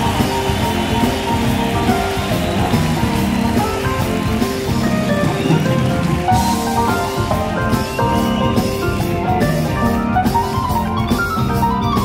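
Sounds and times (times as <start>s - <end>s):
jazz fusion band playing: 0.0s - 12.0s.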